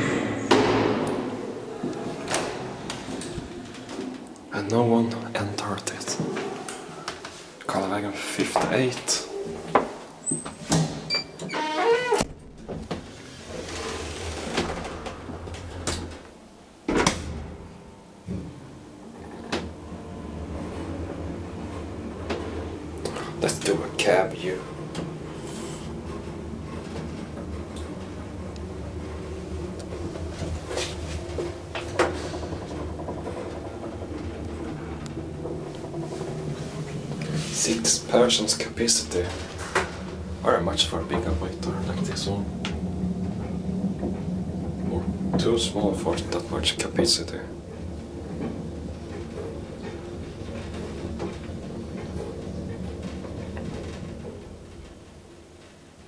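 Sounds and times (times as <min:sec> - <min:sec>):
elevator low hum: 0:00.0 - 0:56.0
faint rattles: 0:18.7 - 0:55.9
elevator clicks and knocks: 0:29.8 - 0:37.3.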